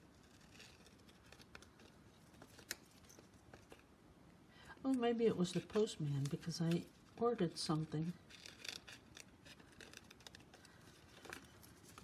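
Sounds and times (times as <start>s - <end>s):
small scissors snipping paper: 0.1s - 3.8s, 5.3s - 12.0s.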